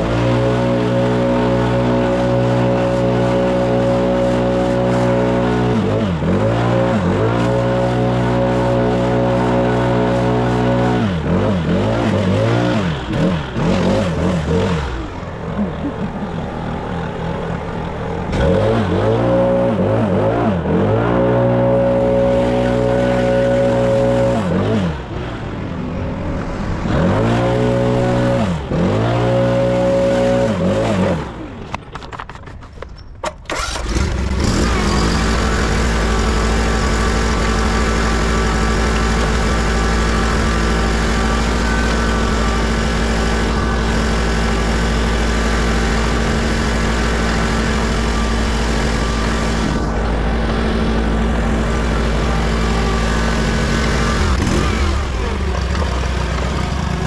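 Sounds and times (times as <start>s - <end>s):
small petrol engine running: 0.0s - 57.0s.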